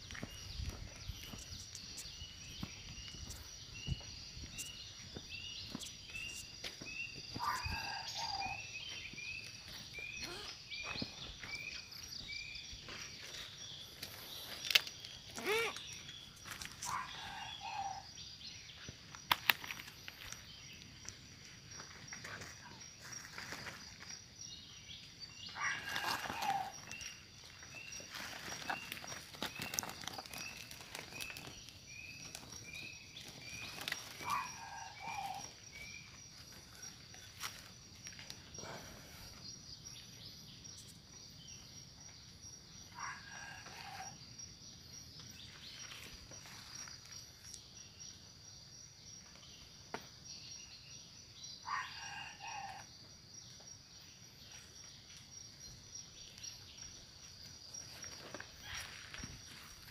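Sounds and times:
insect drone: 0:00.0 - 0:59.9
rustling in dry leaves: 0:25.6 - 0:35.6.

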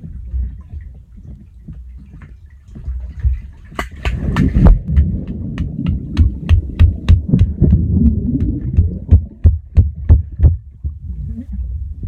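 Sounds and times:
muffled underwater churning: 0:00.0 - 0:12.0.

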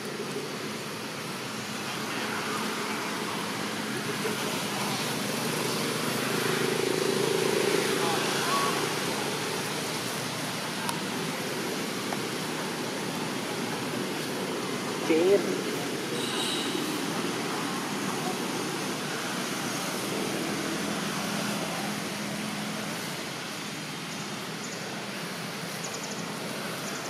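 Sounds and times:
distant voices: 0:00.0 - 0:27.0
outdoor background noise: 0:00.0 - 0:27.0.

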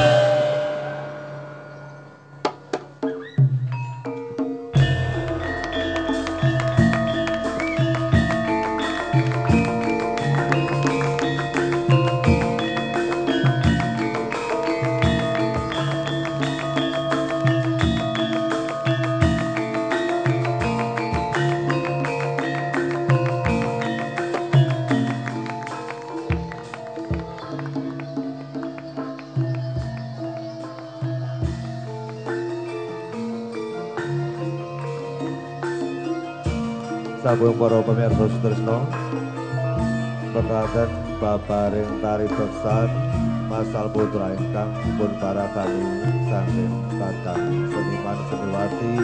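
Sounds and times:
gamelan bronze notes ringing: 0:00.0 - 0:49.0.

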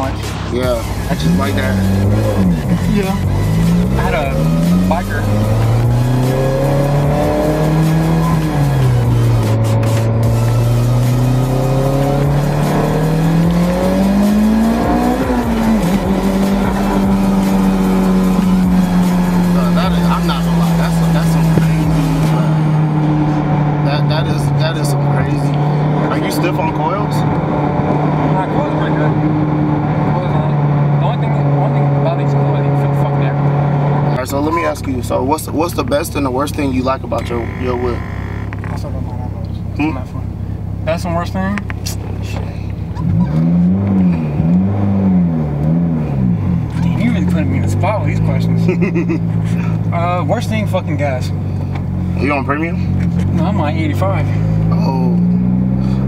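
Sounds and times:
car engine from inside cabin: 0:00.0 - 0:56.0.

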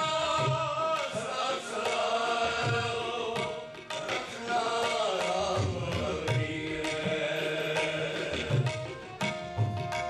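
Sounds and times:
men chanting a hymn: 0:00.0 - 0:08.7
sustained harmonium notes: 0:06.4 - 0:10.0.

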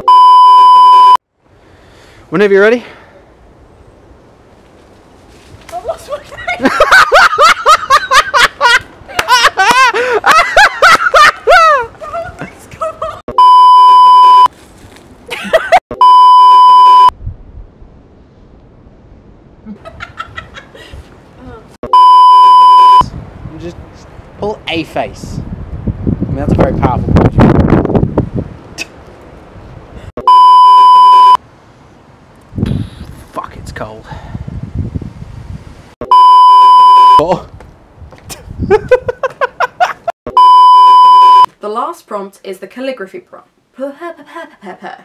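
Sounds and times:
electronic test-tone beep: 0:00.0 - 0:01.2, 0:13.3 - 0:14.5, 0:15.9 - 0:17.1, 0:21.8 - 0:23.0, 0:30.2 - 0:31.4, 0:36.0 - 0:37.2, 0:40.3 - 0:41.5.

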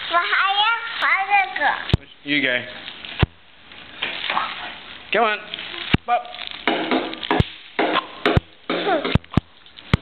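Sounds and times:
bubble wrap popping: 0:00.0 - 0:10.0
plastic sheet crinkling: 0:00.0 - 0:10.0.

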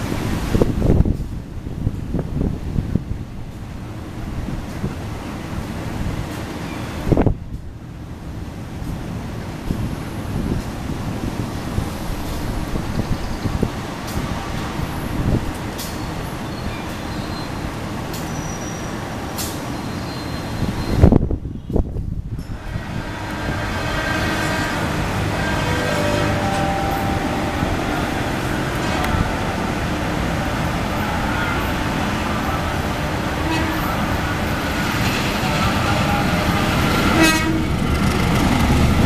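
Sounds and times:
diesel locomotive engine rumble: 0:00.0 - 0:39.0.

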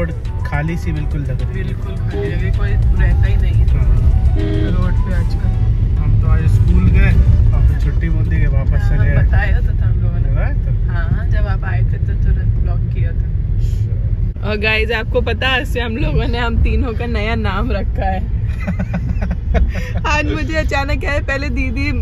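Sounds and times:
car engine and tyres rumbling: 0:00.0 - 0:22.0.

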